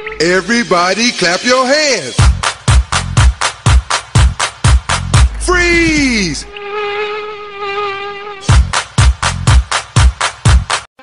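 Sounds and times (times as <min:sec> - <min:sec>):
electronic dance beat with kick drums: 0:00.9 - 0:06.4, 0:08.5 - 0:10.9.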